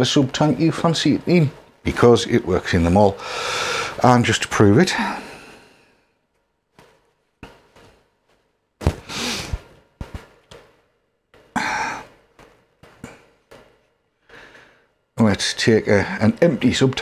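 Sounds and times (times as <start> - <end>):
breathy sighs: 11.6 - 12.1.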